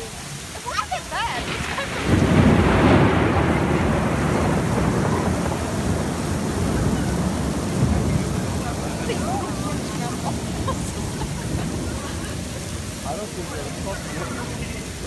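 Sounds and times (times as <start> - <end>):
heavy rain pouring: 0.0 - 15.0
low rumble of thunder: 1.2 - 15.0.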